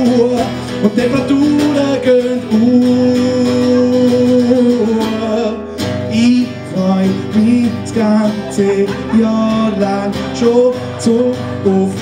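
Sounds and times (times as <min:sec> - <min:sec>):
man singing: 0:00.0 - 0:12.0
strummed acoustic guitar: 0:00.0 - 0:12.0.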